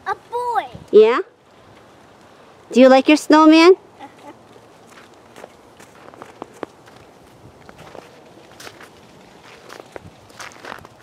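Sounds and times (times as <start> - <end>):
footsteps in snow: 4.8 - 11.0.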